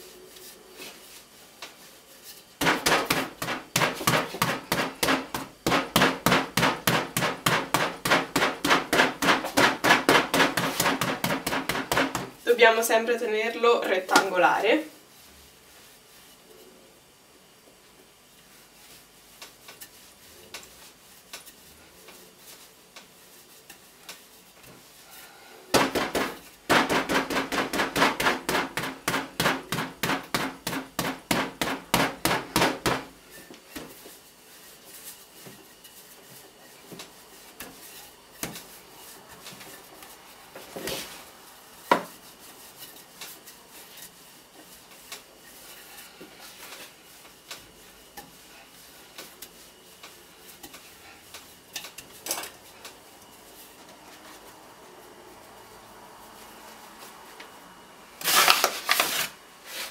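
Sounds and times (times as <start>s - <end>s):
rolling pin knocking on worktop: 2.6s - 12.3s, 25.7s - 33.1s.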